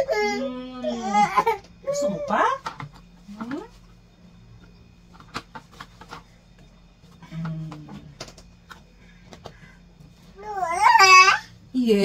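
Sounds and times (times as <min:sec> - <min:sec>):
low hum of a voice: 0:00.0 - 0:03.9, 0:07.1 - 0:08.4, 0:11.7 - 0:12.0.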